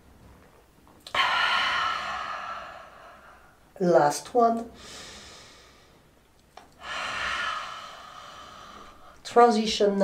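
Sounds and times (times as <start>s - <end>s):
woman breathing: 1.0s - 3.7s, 4.7s - 9.2s.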